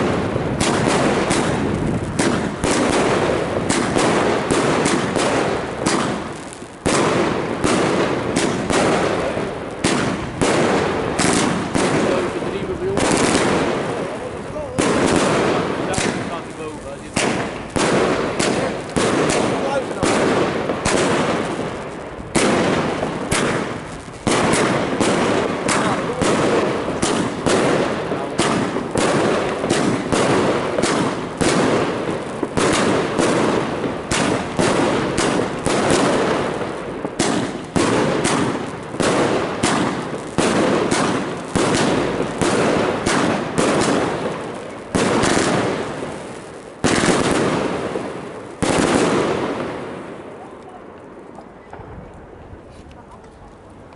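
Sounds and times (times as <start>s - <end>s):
fireworks crackle: 0.0s - 53.9s
fireworks shots and bursts: 0.0s - 53.9s.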